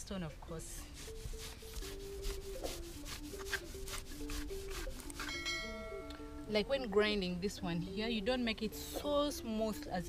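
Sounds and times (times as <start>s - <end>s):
quiet background music: 0.0s - 10.0s
stone grinding seeds: 0.9s - 5.6s.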